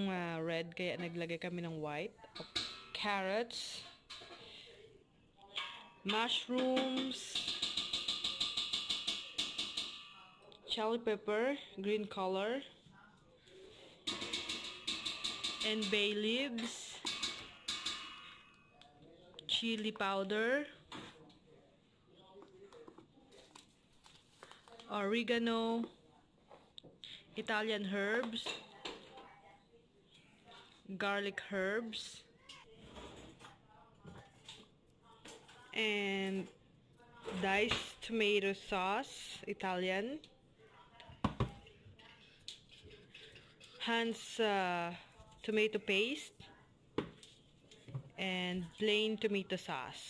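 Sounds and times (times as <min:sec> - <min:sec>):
metal cans knocking on countertop: 0:06.5 - 0:10.2, 0:14.1 - 0:16.2.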